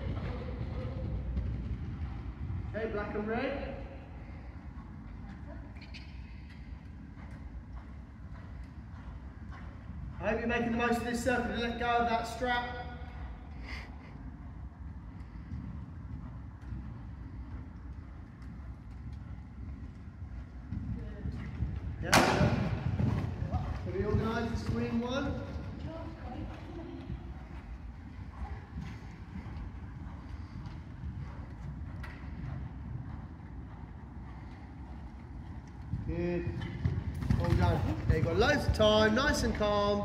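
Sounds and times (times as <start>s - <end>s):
steady low rumble: 0.0s - 40.0s
muffled hoofbeats on sand: 14.1s - 40.0s
loud thump: 22.1s - 23.0s.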